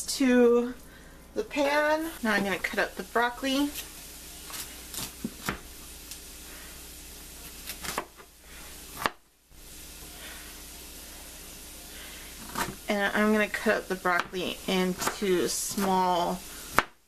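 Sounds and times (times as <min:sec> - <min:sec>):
onions frying: 0:00.2 - 0:17.0.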